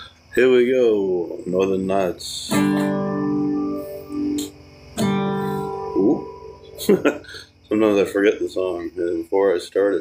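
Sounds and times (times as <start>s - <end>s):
acoustic guitar chords ringing: 0.0s - 10.0s
person laughing: 6.8s - 7.6s.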